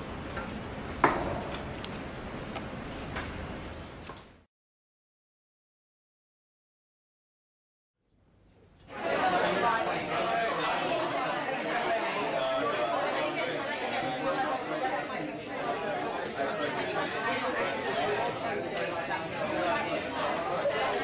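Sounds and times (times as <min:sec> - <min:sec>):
students chattering: 0:08.8 - 0:21.0.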